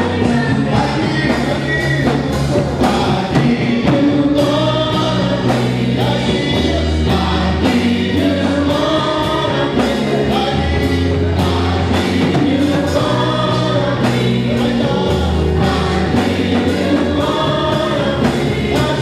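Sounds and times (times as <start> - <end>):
gospel choir singing: 0.0 - 19.0
steady drum beat: 0.0 - 19.0
sustained bass notes: 0.0 - 19.0.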